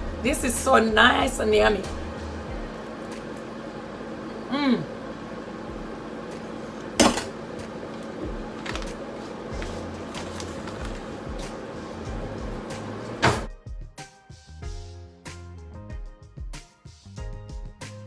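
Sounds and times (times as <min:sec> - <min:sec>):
steady hum: 0:00.0 - 0:13.5.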